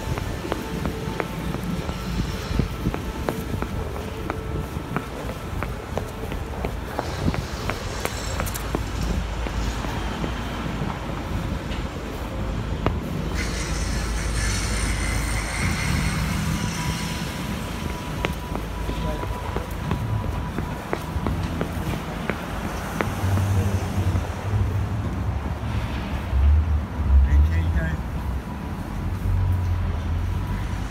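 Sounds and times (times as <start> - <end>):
footstep clicks: 0.0 - 13.2, 17.6 - 24.4
city traffic rumble: 0.0 - 30.9.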